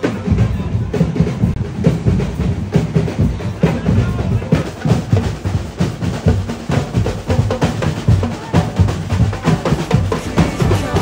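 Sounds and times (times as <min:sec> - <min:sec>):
marching band drums: 0:00.0 - 0:11.0.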